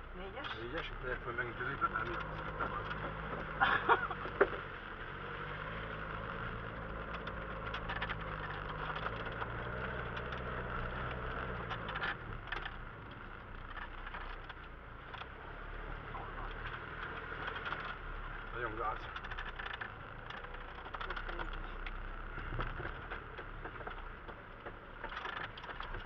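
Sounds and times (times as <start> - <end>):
vehicle body and suspension rattling: 0.0 - 26.0
vehicle engine running at low revs: 0.0 - 26.0.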